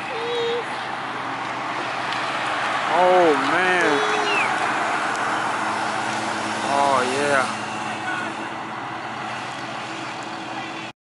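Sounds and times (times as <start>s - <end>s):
bicycles whirring past: 0.0s - 10.9s
street sweeper engine hum: 0.0s - 10.9s.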